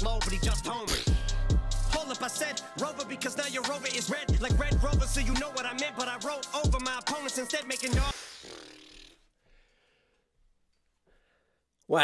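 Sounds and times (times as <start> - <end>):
rap track: 0.0 - 8.2.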